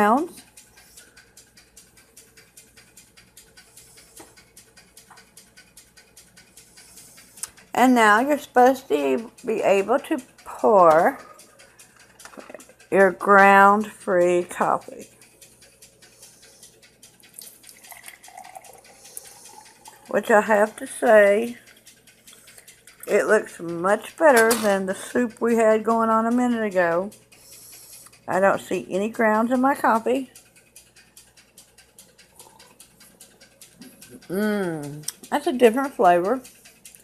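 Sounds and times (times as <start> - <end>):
faint fast ticking: 0.0 - 37.0
coffee pouring into mug: 17.4 - 20.6, 32.3 - 32.8.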